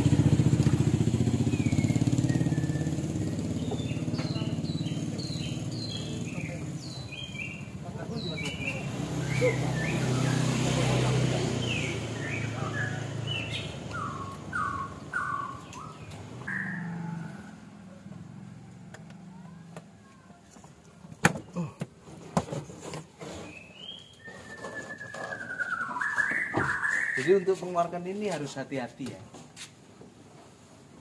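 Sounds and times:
small birds chirping: 0.0s - 18.4s, 22.6s - 29.2s
falling whistled call: 1.6s - 3.3s, 23.8s - 27.6s.

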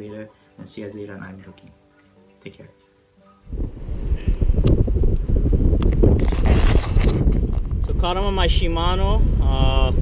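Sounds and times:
wind buffeting microphone: 3.5s - 10.0s.

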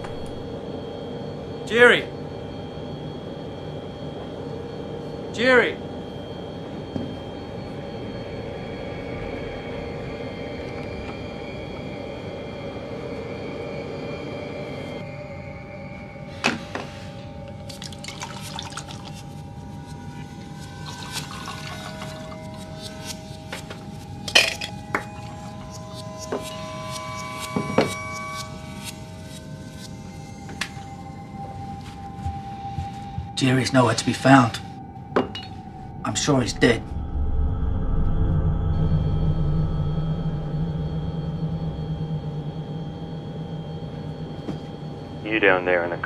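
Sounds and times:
film score drone: 0.0s - 46.0s
liquid pouring into glass: 17.7s - 19.2s, 20.8s - 22.6s
glass clinking: 20.8s - 22.9s, 24.3s - 25.1s, 35.2s - 35.6s.

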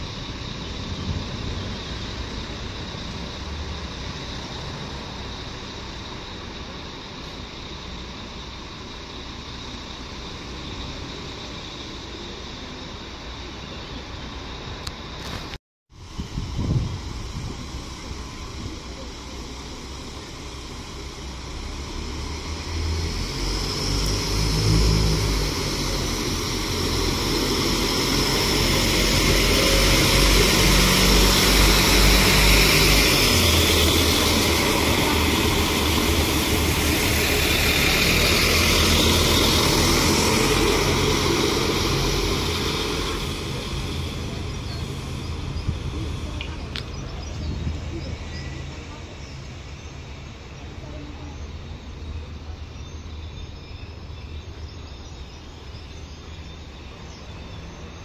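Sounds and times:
diesel engines growling: 0.0s - 58.0s
wheels hissing on rails: 0.0s - 58.0s.

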